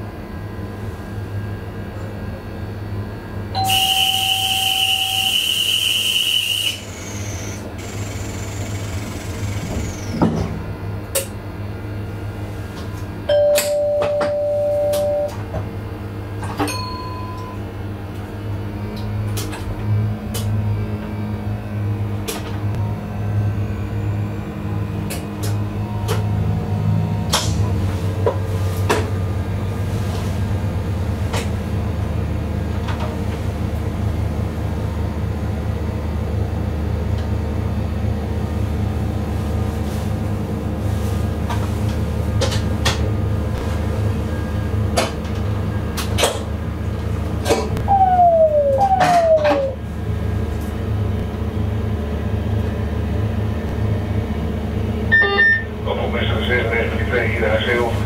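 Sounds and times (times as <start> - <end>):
train humming: 0.0 - 58.0
high steady tone: 13.3 - 15.4, 55.1 - 55.8
two-tone beep: 13.4 - 15.4, 55.1 - 55.7.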